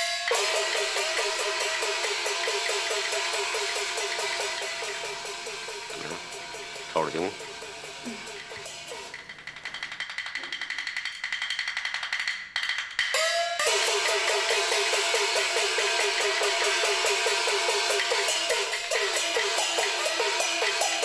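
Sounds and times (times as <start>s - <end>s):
gongs and cymbals beating: 0.0s - 9.2s, 13.1s - 21.0s
clapper and drum strokes: 0.0s - 21.0s.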